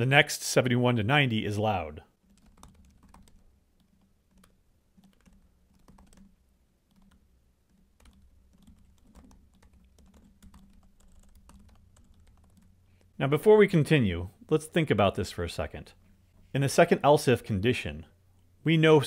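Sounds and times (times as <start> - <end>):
typing on computer keyboard: 2.2 - 12.8.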